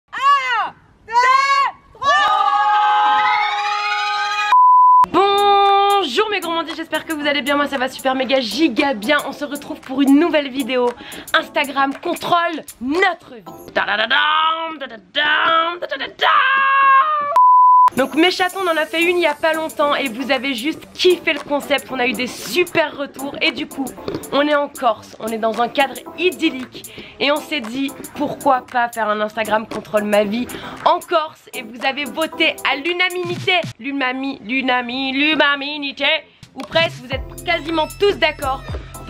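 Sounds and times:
steady bleep: 4.5 - 5.1, 17.4 - 18.1.

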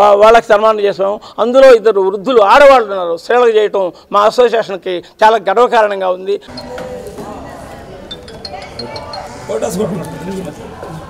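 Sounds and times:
people talking: 6.5 - 11.0.

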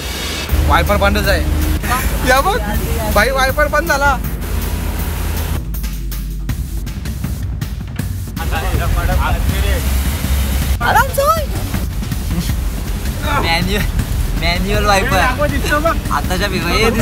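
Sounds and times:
car driving rumble: 0.0 - 17.0
music: 0.0 - 17.0
rain hissing on car: 8.4 - 17.0
voices: 10.8 - 11.5.

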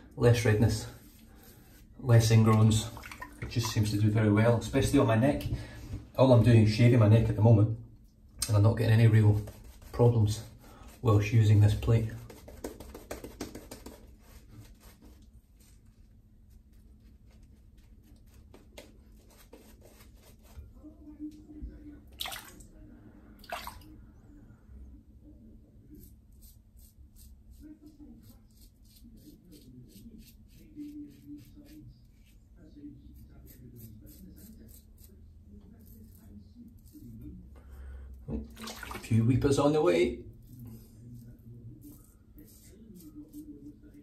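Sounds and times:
razor scraping through stubble: 33.2 - 37.2.

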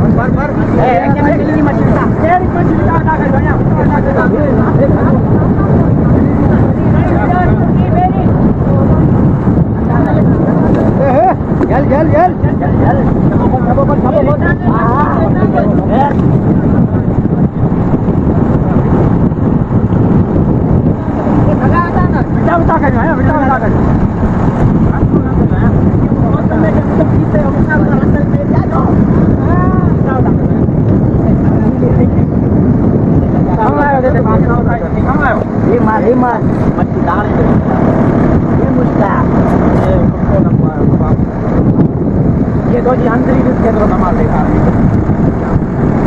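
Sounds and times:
boat engine rumbling: 0.0 - 46.0.

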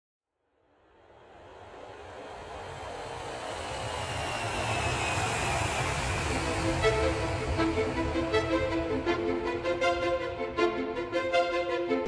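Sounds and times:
jet engine rumble and hiss: 0.8 - 11.4.

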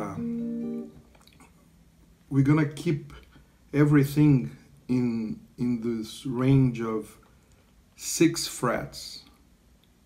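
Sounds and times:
guitar chord ringing: 0.0 - 1.1
person speaking: 0.0 - 1.4.

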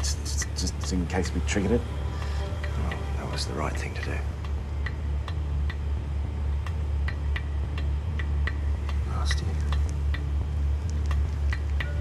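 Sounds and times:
sharp clock-like ticks: 0.0 - 1.7, 2.3 - 12.0
low pulsing drone: 0.0 - 12.0.

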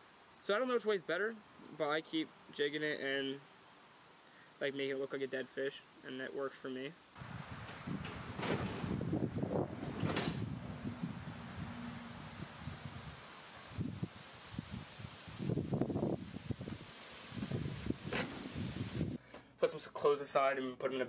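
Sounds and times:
wind buffeting microphone: 7.2 - 19.2
rustles and soft knocks: 7.4 - 10.9, 17.8 - 19.1.

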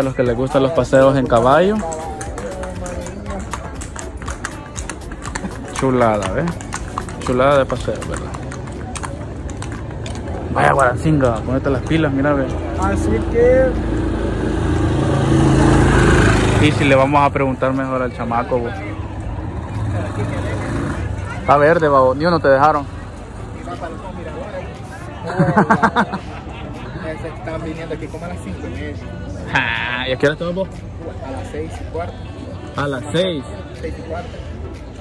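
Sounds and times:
faint distant voices: 0.0 - 35.0
horse hooves on cobblestones: 0.0 - 35.0
low street rumble: 0.0 - 35.0.

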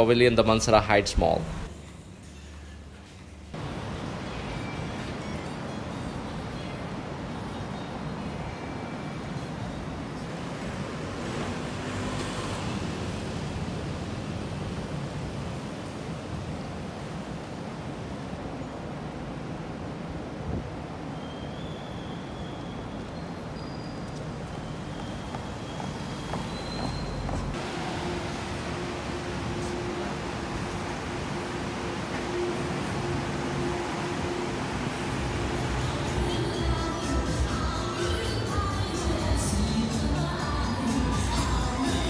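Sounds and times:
passing cars: 9.4 - 18.3, 24.0 - 42.0.

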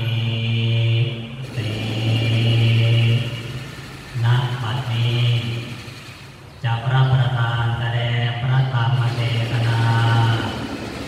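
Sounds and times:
man chanting in monotone: 0.0 - 6.0, 6.6 - 10.8.

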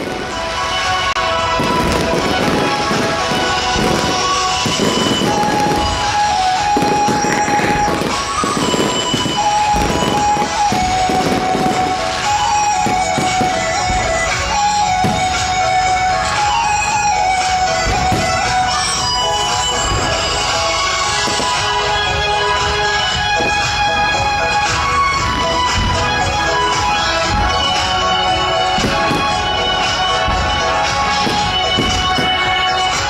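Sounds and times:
fireworks bursting and crackling: 0.0 - 33.0
music with long held notes: 0.0 - 33.0.

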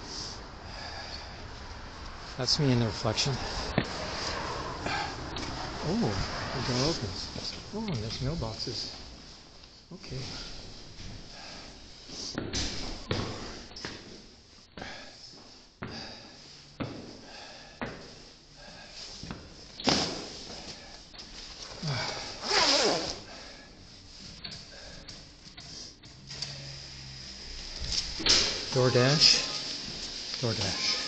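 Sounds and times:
footsteps climbing hard stairs: 12.3 - 18.2.

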